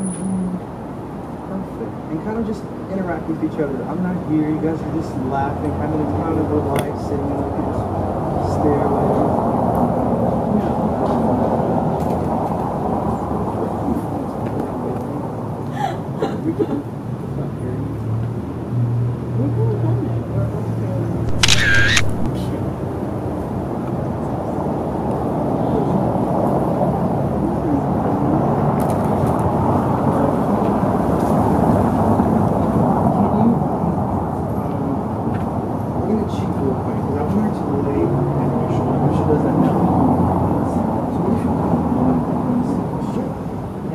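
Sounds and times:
low indistinct voices: 0:01.5 - 0:18.2, 0:19.4 - 0:43.9
camera motor whir: 0:21.3 - 0:22.3
camera shutter: 0:21.3 - 0:22.3.

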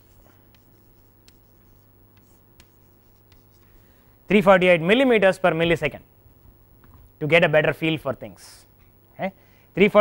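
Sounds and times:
chalk writing on chalkboard: 0:00.0 - 0:03.9
low room hum: 0:00.0 - 0:10.0.

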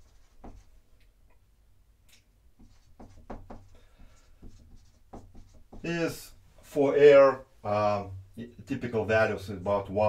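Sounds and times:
marker writing on whiteboard: 0:00.0 - 0:00.8, 0:02.5 - 0:06.1.

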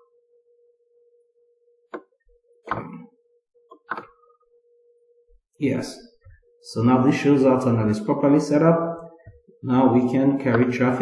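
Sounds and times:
faint mid-pitched hum: 0:00.0 - 0:11.0.

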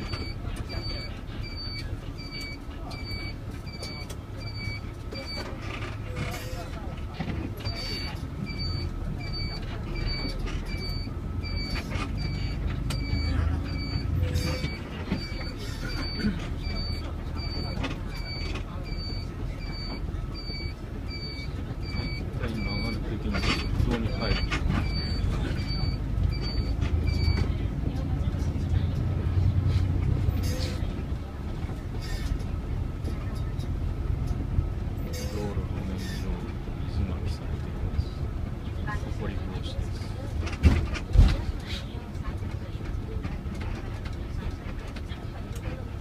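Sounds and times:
turn signal beeping: 0:00.0 - 0:06.5, 0:07.6 - 0:27.9
bus engine rumble: 0:00.0 - 0:46.0
road noise: 0:00.0 - 0:46.0.

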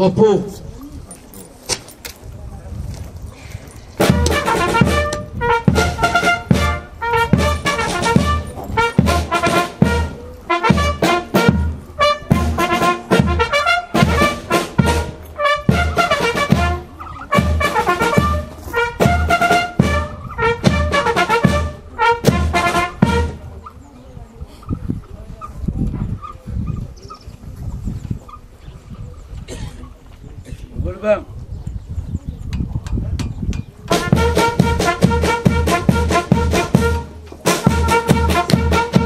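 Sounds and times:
brass band playing: 0:04.0 - 0:23.6, 0:33.9 - 0:39.0.

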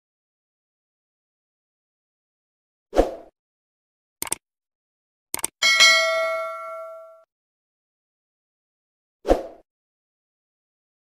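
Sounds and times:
bright bell ding: 0:05.6 - 0:07.2.

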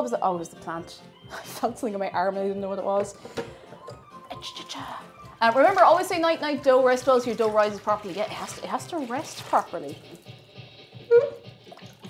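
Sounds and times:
tap running water: 0:03.0 - 0:10.7, 0:11.5 - 0:12.0.

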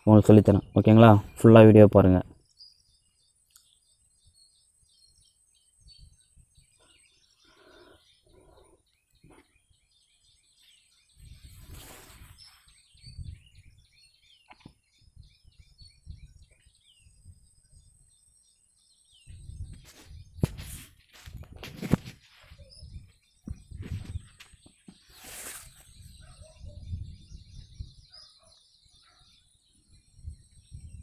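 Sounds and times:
faint birds chirping: 0:00.0 - 0:31.0
rustle: 0:10.5 - 0:13.0, 0:23.8 - 0:26.1.

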